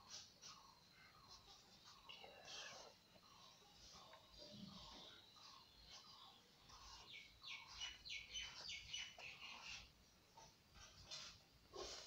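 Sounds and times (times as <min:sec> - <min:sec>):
felt-tip marker scratching paper: 0:04.8 - 0:09.9.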